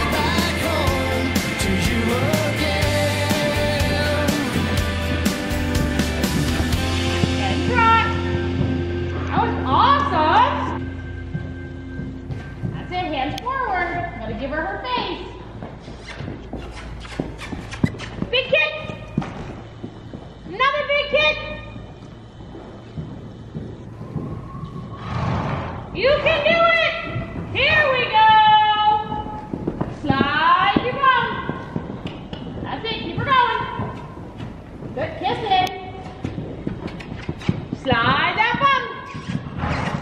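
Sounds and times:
hoofbeats on sand: 0:00.0 - 0:09.9, 0:15.5 - 0:40.0.

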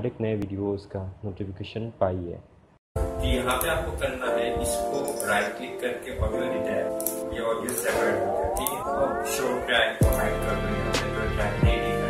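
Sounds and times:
steady low bass with beat: 0:10.0 - 0:12.0.

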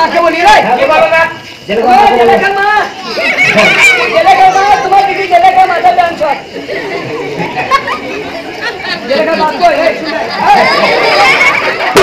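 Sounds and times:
people talking over one another: 0:00.0 - 0:12.0.

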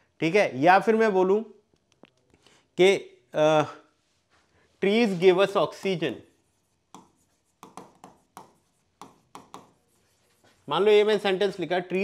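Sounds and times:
stylus tapping on a screen: 0:06.9 - 0:09.8.

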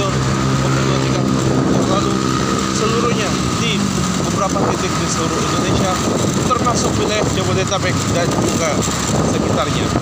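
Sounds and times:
motorcycle engine running: 0:00.0 - 0:10.0
tyre and road noise: 0:00.0 - 0:10.0.

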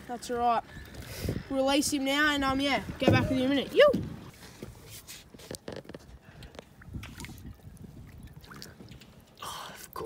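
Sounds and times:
water lapping and sloshing: 0:02.0 - 0:10.0.

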